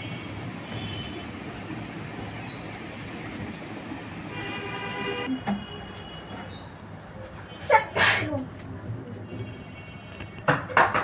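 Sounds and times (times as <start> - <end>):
person sneezing: 7.7 - 8.4.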